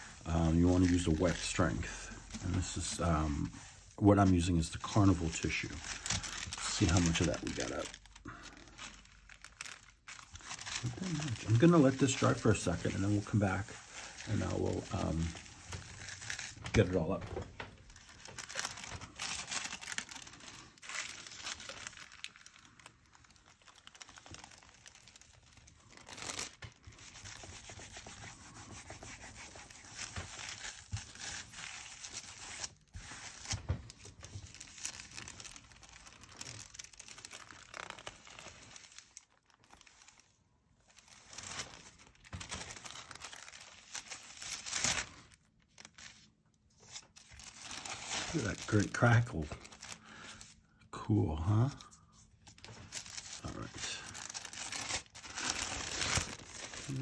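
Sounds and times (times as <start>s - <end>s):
tissue paper rustling: 0.0s - 50.6s, 51.4s - 57.0s.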